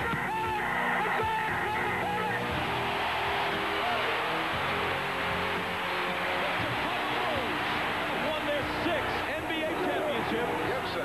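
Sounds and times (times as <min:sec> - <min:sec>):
crowd noise: 0:00.0 - 0:11.0
voices shouting: 0:01.0 - 0:09.3.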